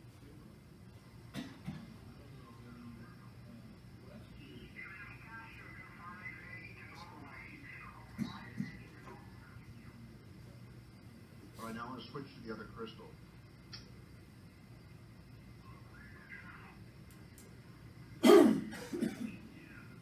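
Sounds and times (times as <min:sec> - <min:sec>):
radio receiver hiss: 0:01.3 - 0:18.0
sharp clicks: 0:13.7 - 0:13.9.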